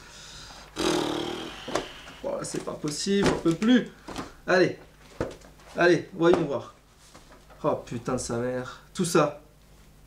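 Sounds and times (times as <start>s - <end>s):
man groaning: 0.8s - 2.2s
paper rustling: 2.4s - 4.4s, 5.0s - 7.7s.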